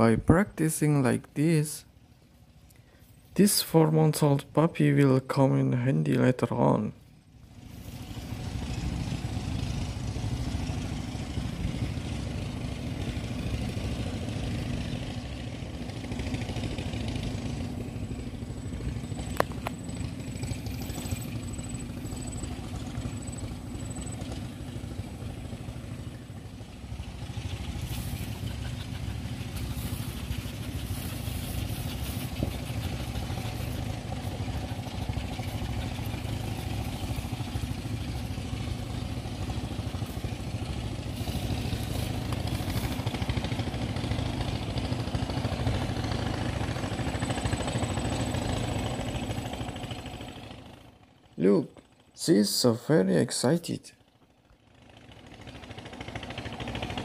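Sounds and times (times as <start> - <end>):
engine-like low hum: 0.0 - 57.0
puppy digging scratchy noise: 27.5 - 38.4, 39.6 - 43.6.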